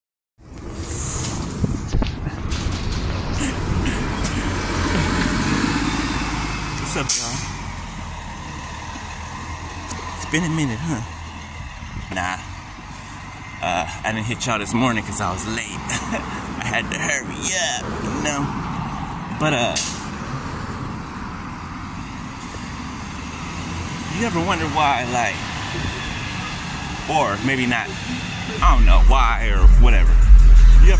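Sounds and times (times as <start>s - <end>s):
low rumble: 0.4s - 6.5s, 27.9s - 30.9s
vehicle engine running: 0.4s - 18.8s, 21.7s - 30.9s.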